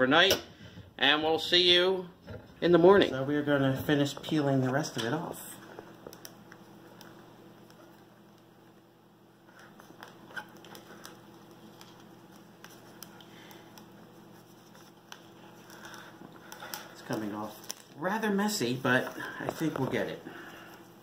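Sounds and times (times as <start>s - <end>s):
low steady hum: 0.0s - 21.0s
glue film crackling as peeled: 5.8s - 8.6s, 9.5s - 20.2s.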